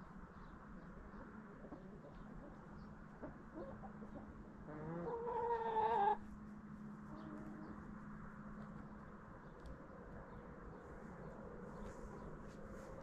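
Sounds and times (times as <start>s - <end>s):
hen clucking: 1.6s - 6.2s.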